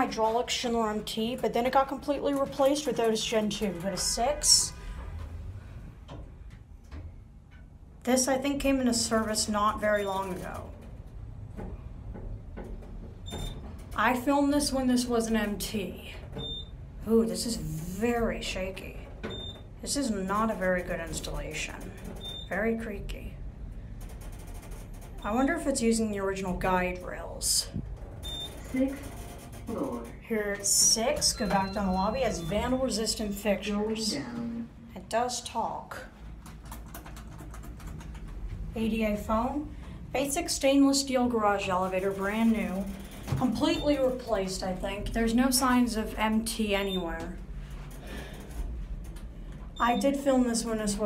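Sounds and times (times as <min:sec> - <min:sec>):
elevator car rumble: 0:00.0 - 0:34.8, 0:36.4 - 0:51.0.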